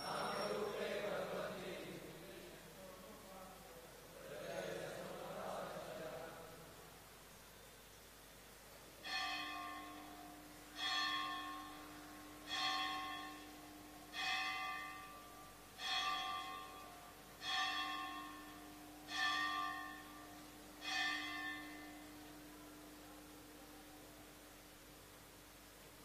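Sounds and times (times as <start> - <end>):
bell ringing: 0.0 - 0.9.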